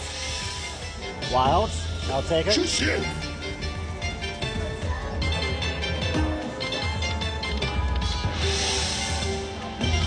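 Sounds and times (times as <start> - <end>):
slot machine music: 0.0 - 10.0.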